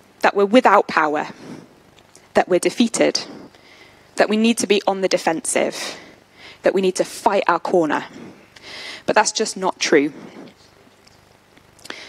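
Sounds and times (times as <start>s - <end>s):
woman's voice: 0.2s - 1.5s, 2.3s - 3.4s, 4.2s - 8.3s, 9.0s - 10.6s.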